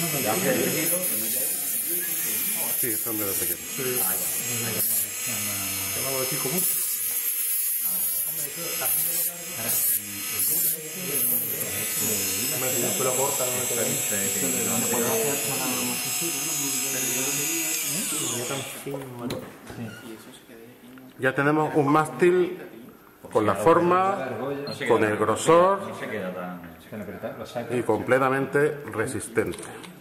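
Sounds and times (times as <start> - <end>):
rotary tool high whine: 0.0 - 18.9
people talking: 7.8 - 20.7.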